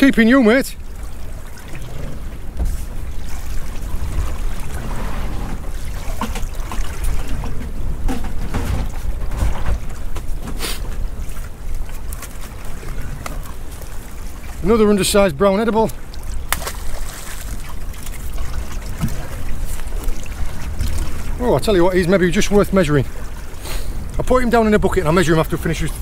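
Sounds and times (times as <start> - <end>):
trickling water: 0.0 - 26.0
wind buffeting microphone: 0.8 - 15.4, 16.0 - 26.0.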